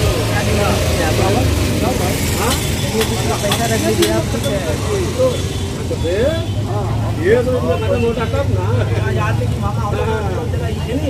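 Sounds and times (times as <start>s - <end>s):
voices chattering: 0.0s - 11.0s.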